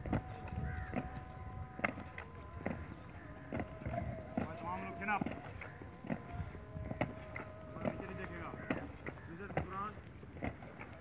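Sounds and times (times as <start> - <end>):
boots marching on brick: 0.0 - 11.0.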